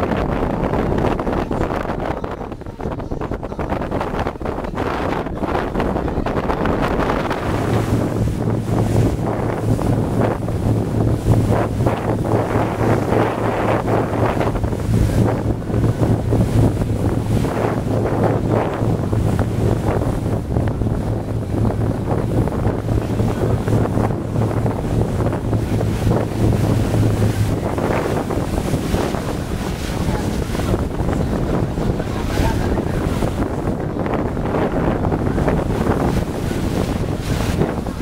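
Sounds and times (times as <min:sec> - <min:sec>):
boat motor humming: 0:00.0 - 0:38.0
choppy sea splashing: 0:00.0 - 0:38.0
wind buffeting microphone: 0:00.0 - 0:38.0.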